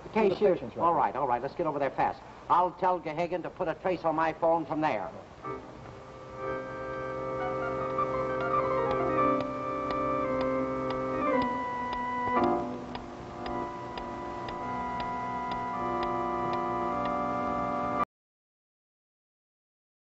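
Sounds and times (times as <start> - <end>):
background music chords: 5.4 - 18.0
clock ticking: 7.4 - 17.6.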